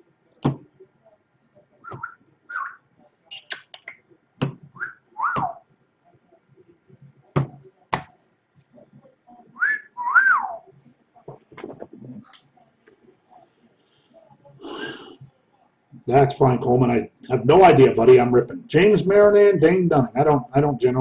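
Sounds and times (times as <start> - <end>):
sliding whistled calls: 1.8 - 3.7.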